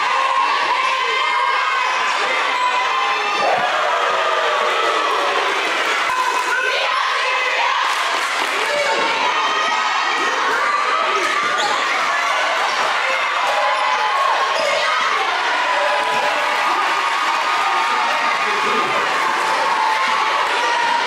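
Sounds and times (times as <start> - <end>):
crowd talking and shouting: 0.0 - 21.0.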